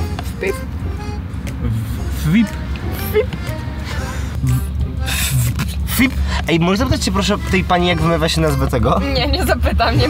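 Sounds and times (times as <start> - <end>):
background music: 0.0 - 10.0
car cabin rumble: 0.0 - 10.0
woman speaking playfully: 9.0 - 10.0.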